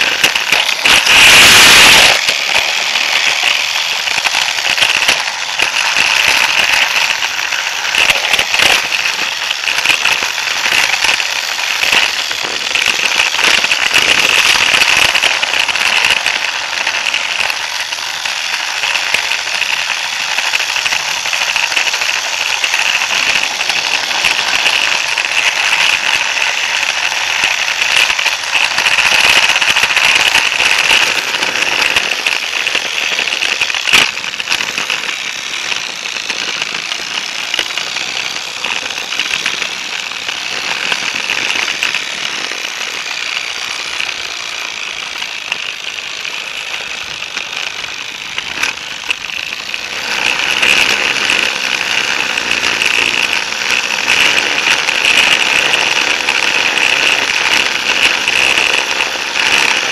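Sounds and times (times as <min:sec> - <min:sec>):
toy train rattling on track: 0:00.0 - 0:59.9.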